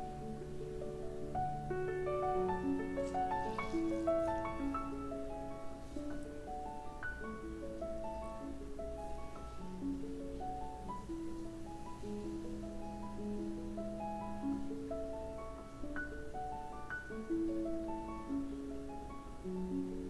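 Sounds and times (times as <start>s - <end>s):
slow piano music: 0.0s - 20.0s.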